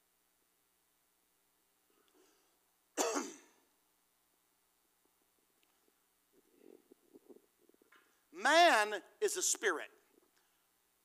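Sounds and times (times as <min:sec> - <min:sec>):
man coughing into microphone: 0:03.0 - 0:03.6.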